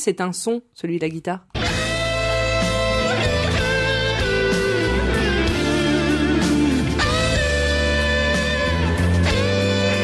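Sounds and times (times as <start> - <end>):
electric guitar: 1.5 - 10.0
steady bass: 1.6 - 10.0
voice imitating electric guitar: 1.6 - 10.0.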